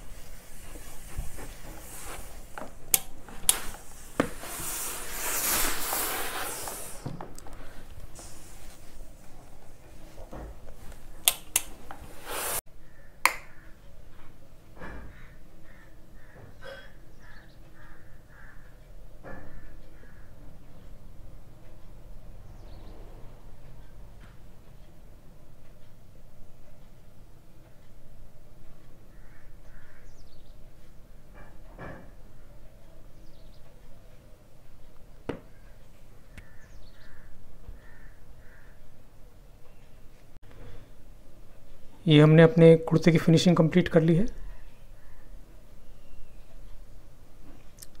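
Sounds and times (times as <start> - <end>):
steam iron hissing: 0.0 - 9.4, 11.4 - 12.7
sharp click: 11.2 - 12.0
bird calling: 35.4 - 39.0
faint higher chirps: 44.5 - 46.7.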